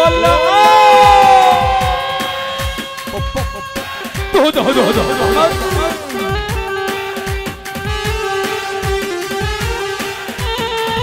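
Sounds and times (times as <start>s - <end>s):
cane wind pipe long note: 0.0s - 11.0s
bass drum thumps: 1.6s - 4.4s
steady drone: 1.8s - 9.6s.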